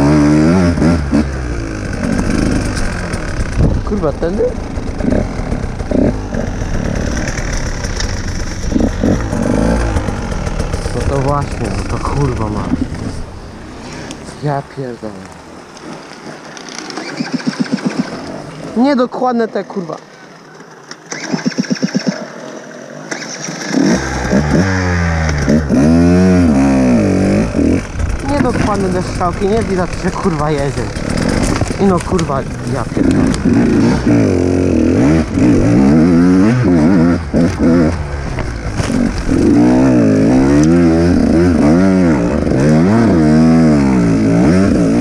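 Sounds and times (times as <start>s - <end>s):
dirt bike engine revving: 0.0s - 19.9s, 20.9s - 45.0s.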